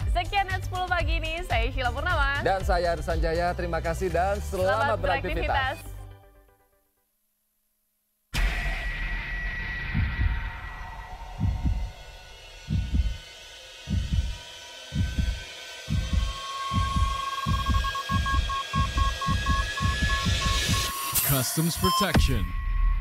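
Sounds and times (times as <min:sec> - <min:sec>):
sudden burst of noise: 0:08.3 - 0:23.0
deep heartbeat-like thuds: 0:09.8 - 0:21.0
thin electronic tone: 0:15.0 - 0:23.0
short even beeps: 0:16.0 - 0:22.6.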